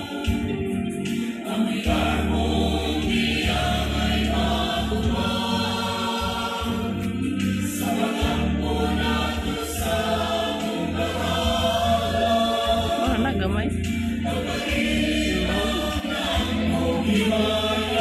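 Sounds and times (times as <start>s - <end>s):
choir singing in harmony: 0.0s - 18.0s.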